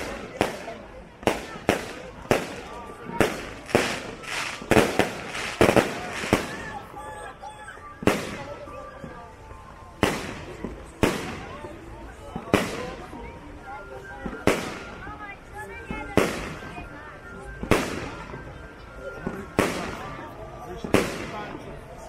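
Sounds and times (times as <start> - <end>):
firework bangs echoing: 0.0 - 7.0, 8.0 - 8.6, 10.0 - 11.6, 12.4 - 13.0, 19.2 - 20.1, 20.8 - 21.6.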